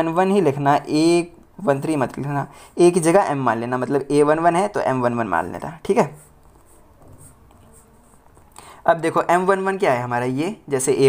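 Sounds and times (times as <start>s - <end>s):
person speaking: 0.0s - 11.0s
pen scratching on paper: 5.4s - 8.5s.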